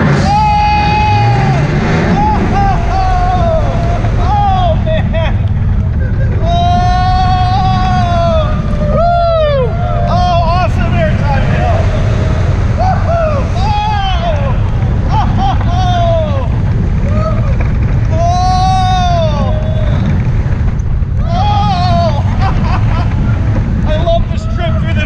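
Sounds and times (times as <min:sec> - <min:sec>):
riders yelling and whooping: 0:00.0 - 0:25.0
roller coaster train rumbling on track: 0:00.0 - 0:25.0
wind buffeting: 0:00.0 - 0:25.0.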